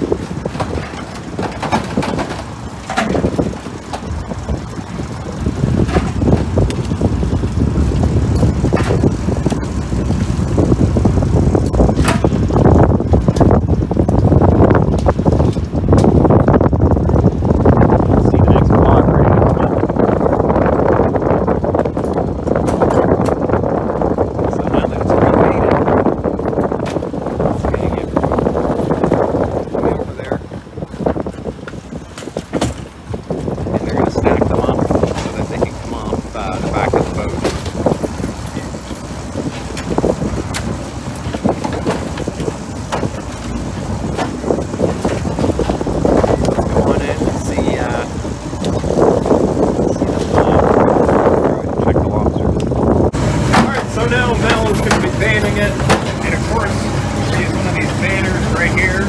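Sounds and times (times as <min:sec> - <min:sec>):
boat engine running: 0:00.0 - 0:59.0
sea noise: 0:00.0 - 0:59.0
wind: 0:00.0 - 0:59.0
wire traps knocking: 0:00.1 - 0:07.0, 0:08.0 - 0:14.2, 0:53.4 - 0:56.4
indistinct voices: 0:33.6 - 0:59.0.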